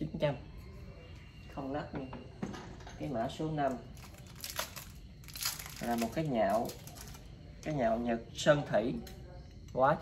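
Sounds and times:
wrapping crinkling: 3.9s - 7.4s.

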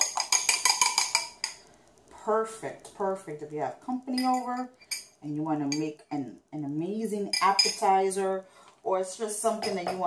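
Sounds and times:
fork clinking on glass: 0.0s - 1.6s.

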